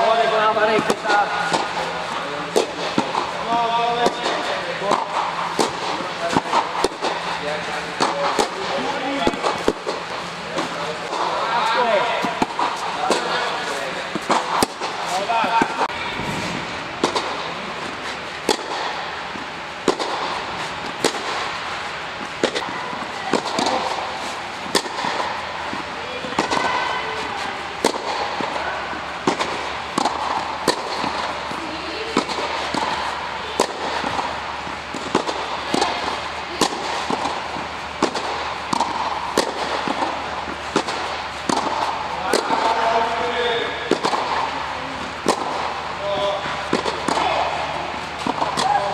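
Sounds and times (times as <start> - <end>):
steady background noise: 0.0 - 48.9
tennis balls hit with rackets: 0.0 - 48.9.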